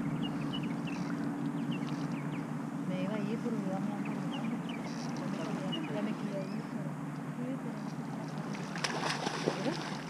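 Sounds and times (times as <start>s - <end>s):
motor drone: 0.0s - 8.8s
birds chirping: 0.0s - 10.0s.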